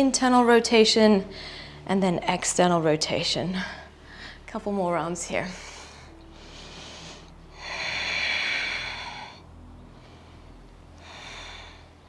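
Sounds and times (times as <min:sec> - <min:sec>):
person breathing: 0:01.3 - 0:01.8, 0:03.6 - 0:04.5, 0:05.6 - 0:12.0.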